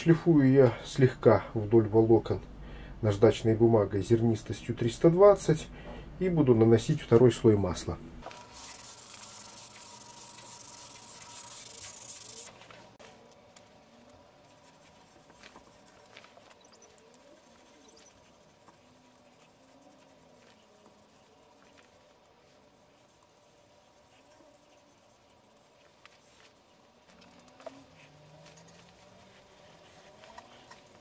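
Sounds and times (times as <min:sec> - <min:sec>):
faint handling sounds: 0:08.2 - 0:31.0
sandpaper rubbing on wood: 0:08.3 - 0:12.6, 0:16.7 - 0:31.0.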